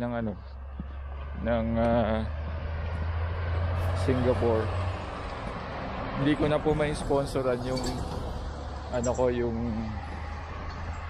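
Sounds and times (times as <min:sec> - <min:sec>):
vehicle passing with road noise: 0:00.0 - 0:11.0.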